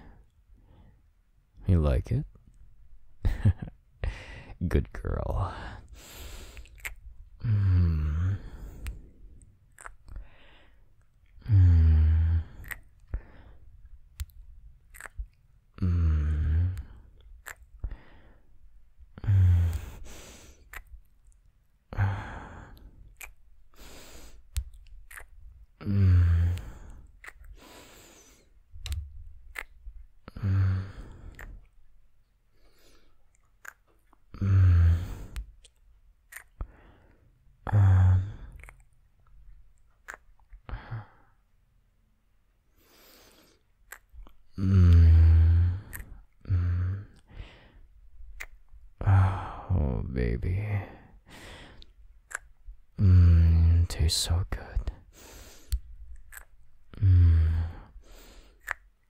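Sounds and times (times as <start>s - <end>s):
short kiss-like click: 6.6s - 7.0s, 9.8s - 10.2s, 14.2s - 15.2s, 17.4s - 17.7s, 20.7s - 21.0s, 23.2s - 23.4s, 24.5s - 25.3s, 40.0s - 40.3s, 52.3s - 52.5s, 55.7s - 56.5s, 58.6s - 58.9s
man moaning: 7.4s - 8.4s
breathy sigh: 21.9s - 22.9s, 49.0s - 49.8s.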